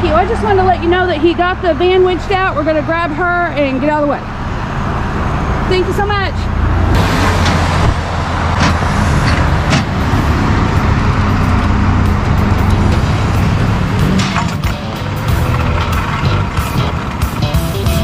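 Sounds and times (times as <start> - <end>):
truck engine idling: 0.0 - 18.0
background music: 9.4 - 18.0.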